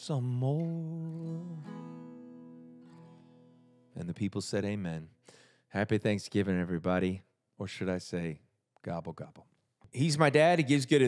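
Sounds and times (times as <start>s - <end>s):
acoustic guitar chord ringing: 0.2s - 4.0s.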